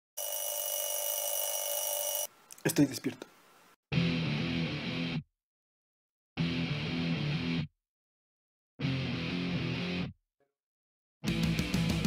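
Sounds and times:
electronic alarm buzz: 0.2s - 2.3s.

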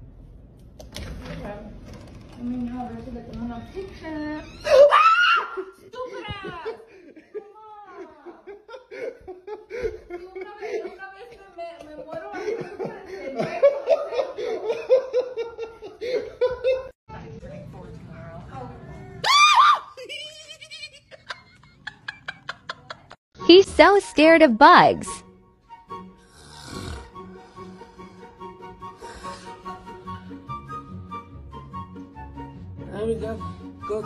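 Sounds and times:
woman shrieking: 4.4s - 5.8s, 19.2s - 20.0s
laughter: 5.5s - 17.0s, 20.0s - 23.2s.

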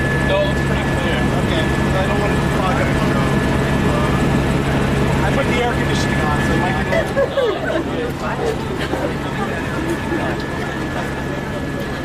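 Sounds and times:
faint voices: 0.0s - 12.0s
helicopter engine and rotor: 0.0s - 12.0s
high whine: 0.0s - 12.0s.

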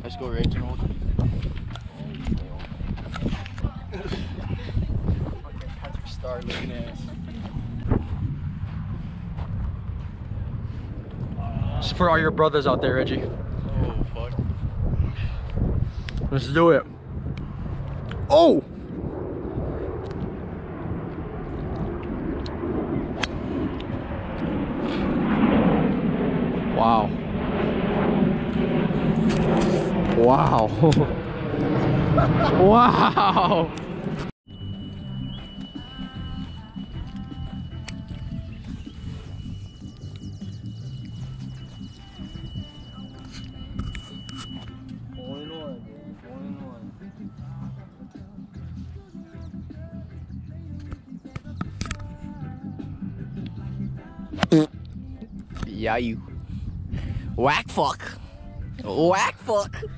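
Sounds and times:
men talking: 0.0s - 0.9s, 6.0s - 7.2s, 11.4s - 14.4s, 16.2s - 16.9s, 26.7s - 27.2s, 30.1s - 31.1s, 55.6s - 56.2s, 57.3s - 58.2s, 58.8s - 59.9s
low rumble: 0.0s - 47.9s
men laughing: 3.9s - 4.8s, 31.9s - 33.8s.

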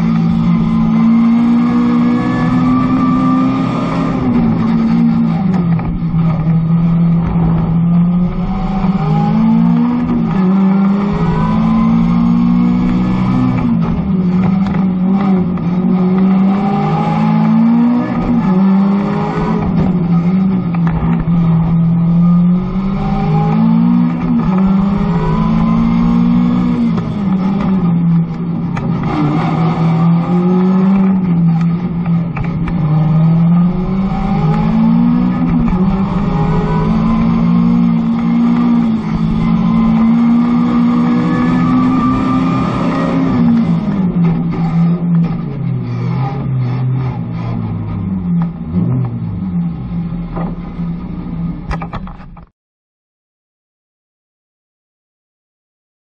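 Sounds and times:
car engine revving: 0.0s - 52.4s.

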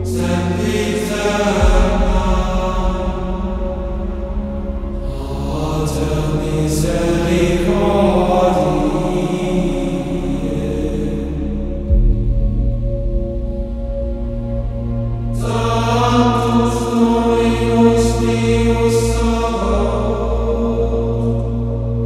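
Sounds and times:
chant with long sung notes: 0.0s - 22.0s
steady low drone: 0.0s - 22.0s.

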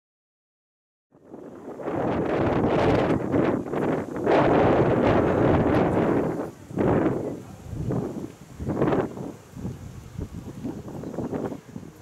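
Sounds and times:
wind buffeting microphone: 1.2s - 12.0s.

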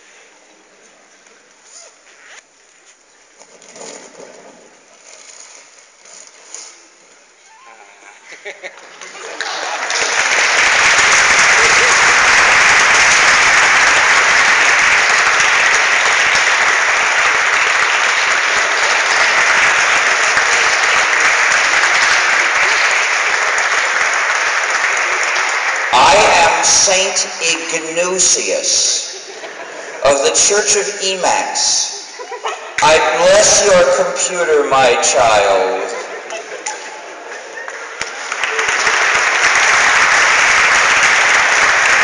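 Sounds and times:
audience applauding: 8.5s - 34.6s, 35.3s - 42.0s
man speaking: 25.9s - 29.2s, 30.0s - 32.1s, 32.8s - 36.2s.

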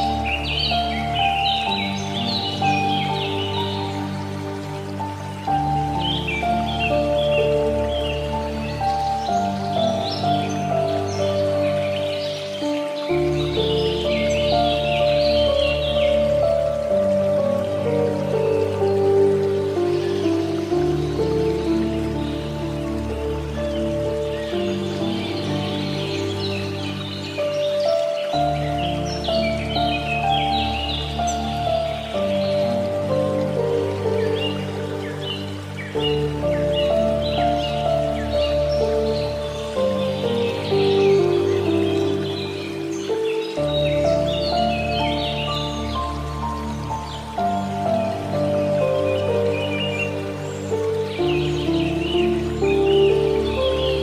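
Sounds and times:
birds chirping: 0.0s - 54.0s
flowing water: 0.0s - 54.0s
soft slow piano music: 0.0s - 54.0s.

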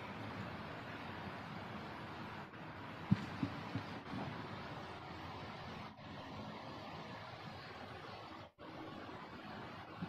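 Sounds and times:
soft low thumps: 3.0s - 4.4s.

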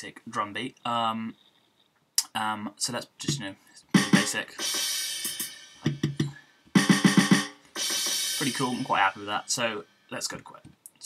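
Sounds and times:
drum hits: 4.0s - 9.6s.

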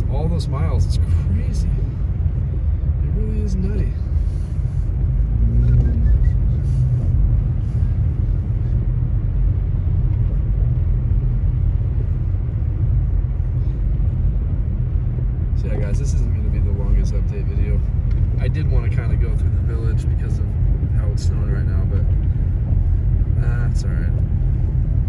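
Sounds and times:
car cabin road rumble: 0.0s - 25.0s.

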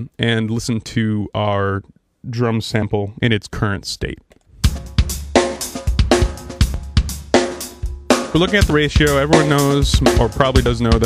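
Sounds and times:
drum kit loop: 4.6s - 11.0s.

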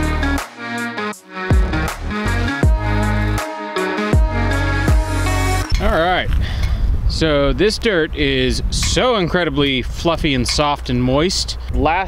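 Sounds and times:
background music: 0.0s - 5.9s.

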